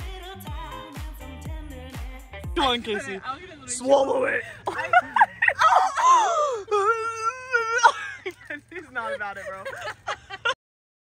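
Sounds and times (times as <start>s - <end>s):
person wailing moan: 5.6s - 8.0s.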